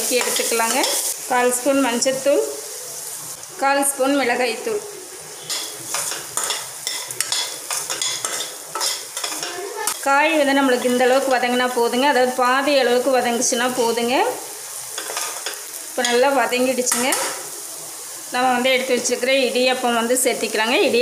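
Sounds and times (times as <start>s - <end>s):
metal spoon scraping a pan: 0.0s - 1.2s, 5.4s - 10.1s, 15.0s - 16.2s
vegetables sizzling in oil: 0.0s - 21.0s.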